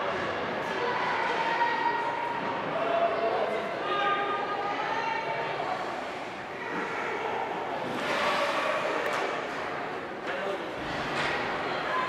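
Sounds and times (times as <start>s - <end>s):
skating hiss and arena ambience: 0.0s - 12.0s.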